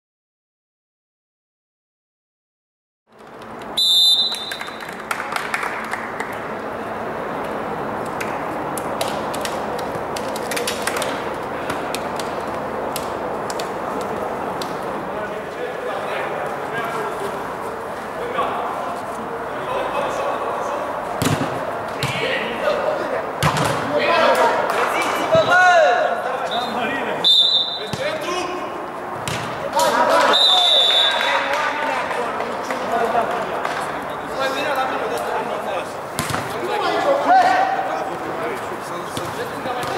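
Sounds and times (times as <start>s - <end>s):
referee whistle blasts: 3.8s - 4.8s, 26.5s - 28.0s, 30.3s - 31.3s
players calling out: 13.4s - 39.9s
football kicked and bouncing: 21.2s - 22.2s, 23.4s - 23.8s, 27.9s - 28.2s, 29.2s - 29.6s, 36.2s - 36.6s, 39.1s - 39.9s.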